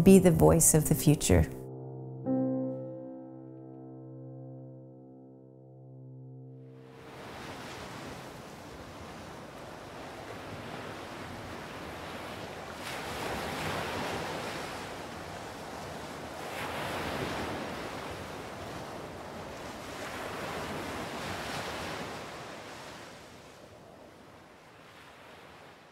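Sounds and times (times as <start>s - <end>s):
ocean waves breaking: 6.8s - 25.9s.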